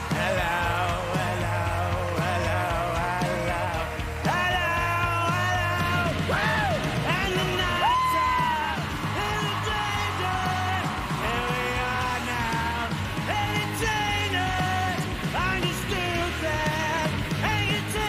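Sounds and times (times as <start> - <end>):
gritty lead vocal: 0.0 - 18.0
rock band playing: 0.0 - 18.0.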